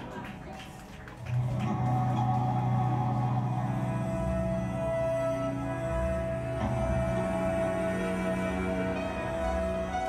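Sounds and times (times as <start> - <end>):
low sustained note: 1.9 - 10.0.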